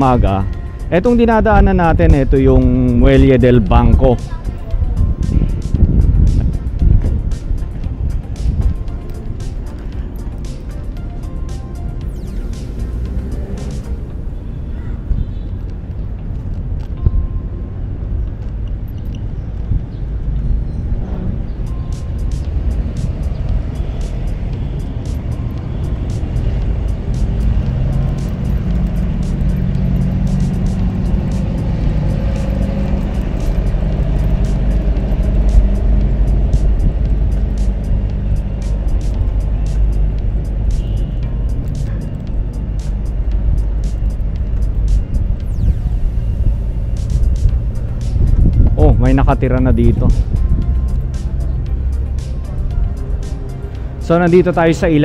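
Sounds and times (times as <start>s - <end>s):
city street traffic rumble: 0.0s - 55.0s
quiet background music: 0.0s - 55.0s.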